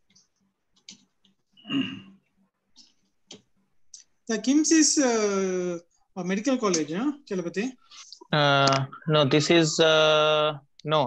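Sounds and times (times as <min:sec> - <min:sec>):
keyboard and mouse clicks: 0:00.0 - 0:01.4, 0:02.8 - 0:04.1.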